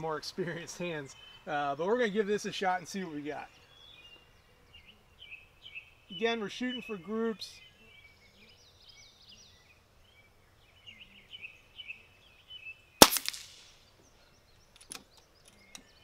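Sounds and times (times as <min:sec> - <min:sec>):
air pistol shot: 0:13.0 - 0:13.8.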